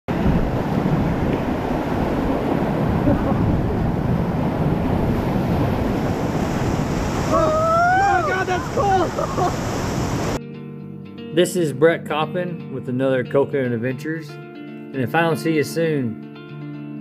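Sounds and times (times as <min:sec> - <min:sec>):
whitewater rushing and splashing: 0:00.1 - 0:10.4
wind buffeting microphone: 0:00.1 - 0:10.4.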